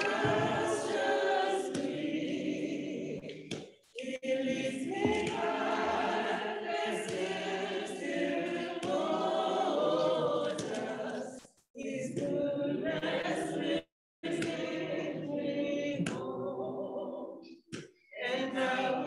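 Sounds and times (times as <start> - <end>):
congregation singing unaccompanied: 0.0 - 19.0.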